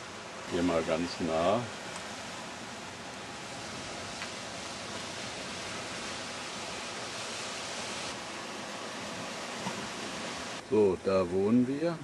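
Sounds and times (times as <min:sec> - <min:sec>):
surf breaking on rocky shore: 0:00.2 - 0:10.6.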